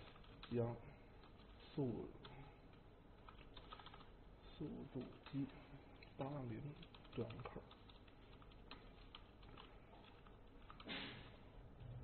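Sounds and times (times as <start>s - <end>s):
computer keyboard typing: 0.0s - 4.2s, 4.8s - 10.9s.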